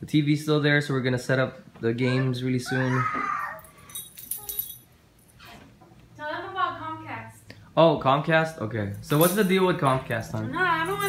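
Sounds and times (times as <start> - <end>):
light metallic jingling: 3.6 - 5.4, 8.9 - 11.0.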